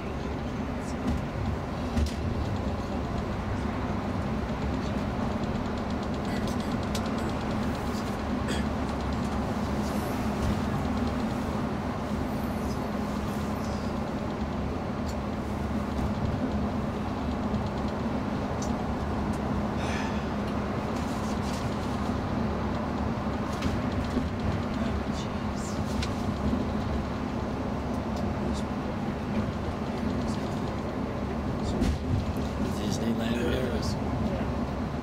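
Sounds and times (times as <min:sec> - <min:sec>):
bus engine and tyre drone: 0:00.0 - 0:35.0.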